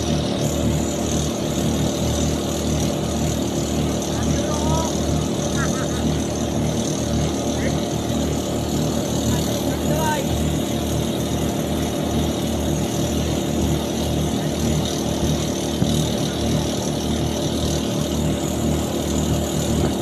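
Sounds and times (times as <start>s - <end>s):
boat engine droning: 0.0s - 20.0s.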